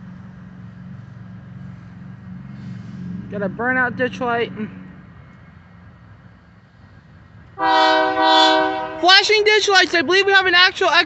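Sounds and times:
diesel locomotive rumble: 0.0s - 11.0s
locomotive air horn chord: 7.6s - 9.2s.

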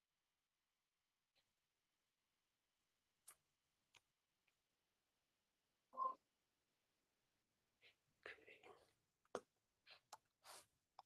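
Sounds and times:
quiet voice sounds: 7.8s - 10.2s.

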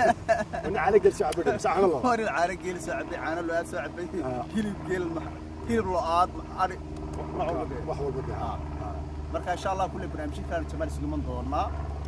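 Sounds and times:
men talking: 0.0s - 11.8s
low hum: 0.0s - 12.0s.

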